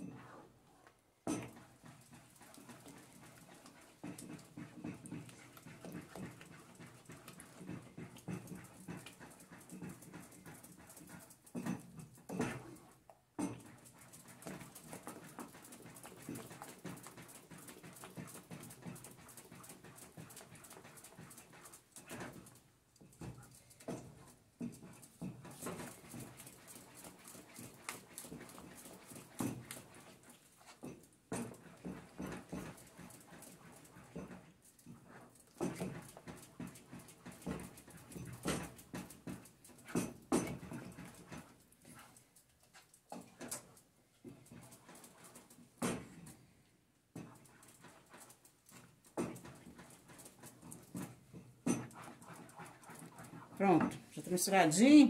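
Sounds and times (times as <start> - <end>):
wooden spoon scraping saucepan: 0.0 - 10.3, 47.2 - 54.8.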